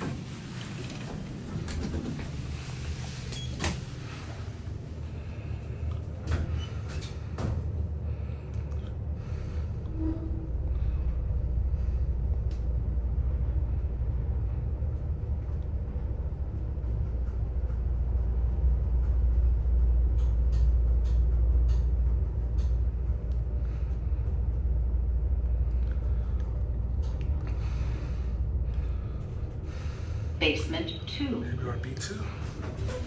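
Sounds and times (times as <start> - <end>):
elevator low rumble: 0.0 - 33.0.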